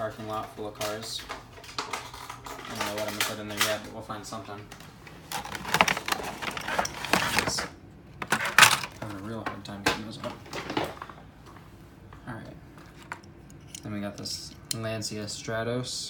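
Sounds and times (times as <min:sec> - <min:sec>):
plastic packaging rustling: 0:00.8 - 0:09.2.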